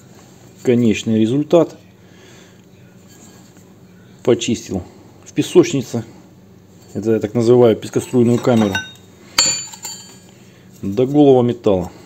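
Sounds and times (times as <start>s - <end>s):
steel plate clinking on metal: 7.8s - 10.3s.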